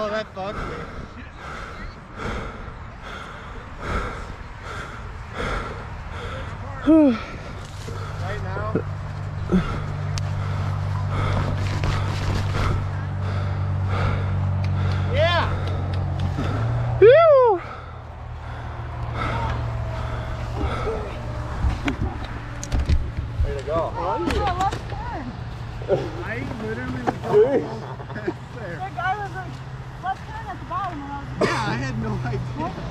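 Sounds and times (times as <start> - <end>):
steady low hum: 0.0 - 32.9
person whooping: 17.0 - 17.7.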